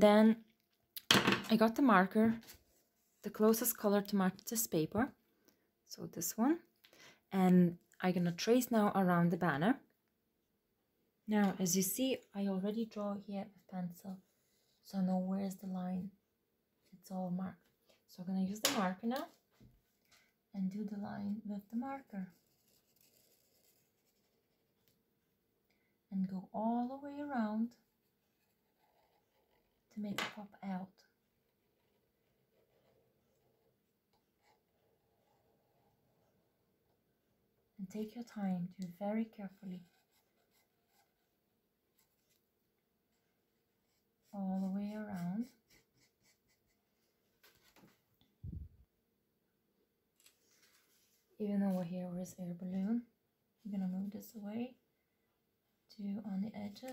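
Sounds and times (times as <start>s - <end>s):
marker scratching on paper: 39.4s - 41.3s, 43.8s - 47.7s
faint handling sounds: 50.2s - 51.9s.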